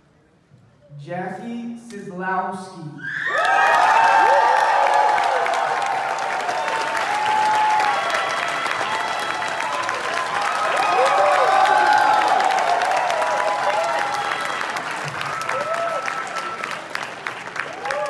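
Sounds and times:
crowd cheering and screaming: 3.0s - 18.0s
crowd applauding: 3.2s - 18.0s.

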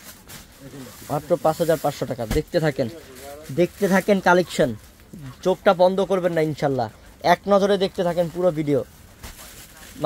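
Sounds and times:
person speaking: 0.6s - 8.9s
fabric rustling: 8.0s - 10.0s.

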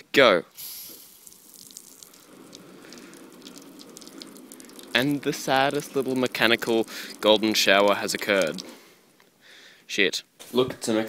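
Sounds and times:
water spray pattering on glass: 0.6s - 9.0s.

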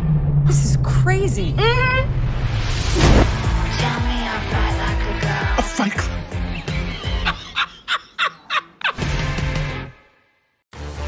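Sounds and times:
music: 3.1s - 7.6s, 9.0s - 11.0s.

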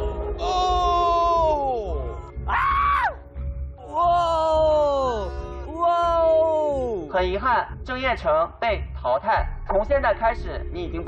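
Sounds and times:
man screaming: 0.4s - 3.2s, 3.8s - 7.1s
man shouting: 0.4s - 3.2s, 3.8s - 7.2s.

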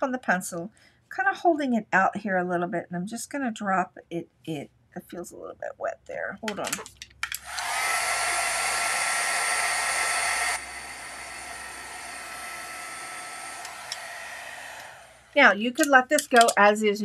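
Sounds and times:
heat tool blowing hot air: 7.4s - 15.4s.

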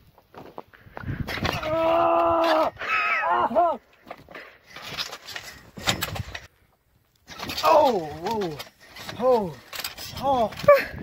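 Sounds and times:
person exclaiming oh: 1.6s - 3.8s.

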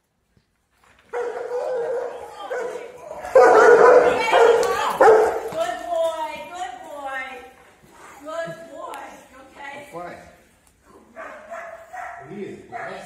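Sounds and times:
large dog barking aggressively: 1.1s - 5.6s, 11.2s - 13.0s.

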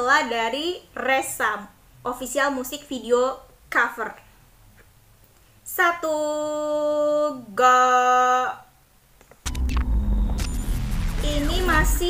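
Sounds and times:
deep rumble: 9.5s - 12.0s.

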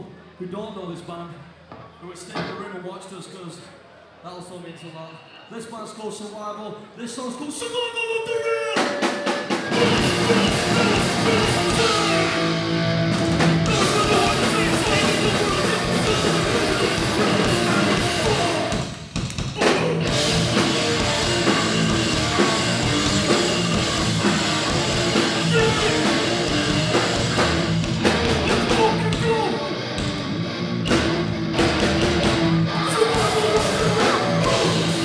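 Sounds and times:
vocals into microphone: 6.0s - 12.6s, 13.6s - 18.8s, 19.6s - 20.2s, 25.3s - 26.3s, 32.7s - 35.0s
distorted electric guitars: 8.7s - 35.0s
drum kit: 8.7s - 35.0s.

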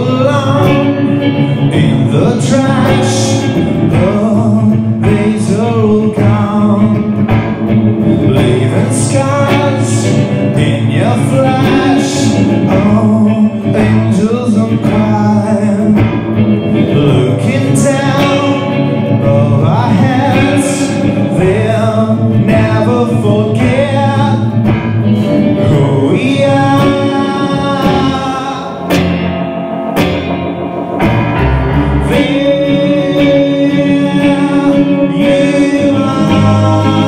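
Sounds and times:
man singing a waltz: 0.0s - 7.3s, 7.9s - 24.6s, 25.2s - 29.0s, 31.8s - 37.0s
electric guitar: 0.0s - 37.0s
keyboard: 23.6s - 37.0s.

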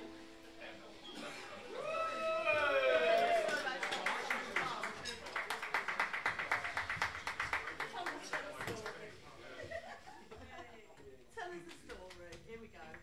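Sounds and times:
audience clapping: 2.7s - 9.2s.

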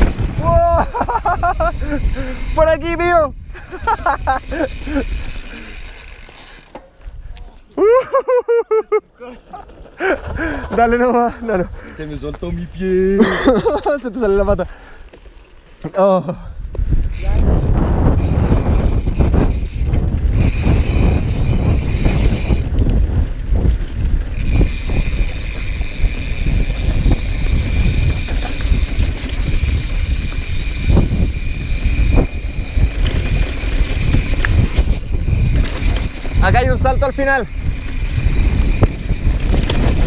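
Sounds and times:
tyres rumbling on loose dirt: 0.0s - 2.7s, 3.8s - 7.2s, 9.4s - 13.0s, 17.1s - 40.0s
wind buffeting microphone: 0.0s - 6.3s, 9.9s - 13.0s, 16.5s - 40.0s
bike rattling over bumps: 0.0s - 7.2s, 9.4s - 11.6s, 16.7s - 40.0s.

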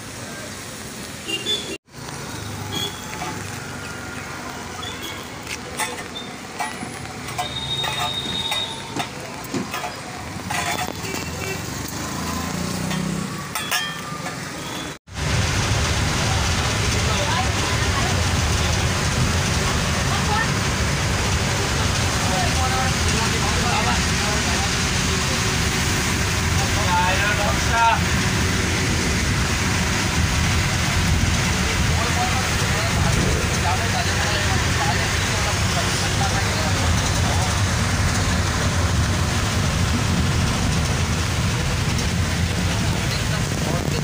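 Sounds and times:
bus engine and road noise: 0.0s - 44.0s
faint passenger voices: 31.5s - 38.6s, 41.7s - 44.0s.

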